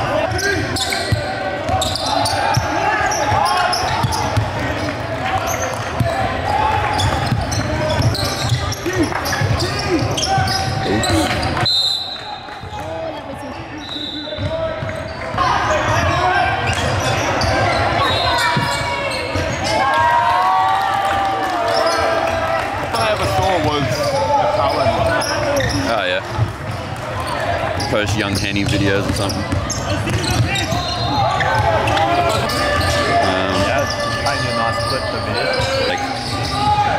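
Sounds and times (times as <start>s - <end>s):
voices calling out in hall: 0.0s - 36.9s.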